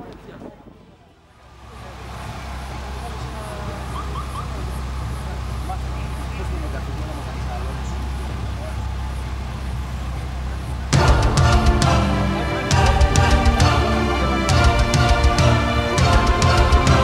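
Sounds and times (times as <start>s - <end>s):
people talking faintly: 0.0s - 17.0s
steady low rumble: 1.0s - 17.0s.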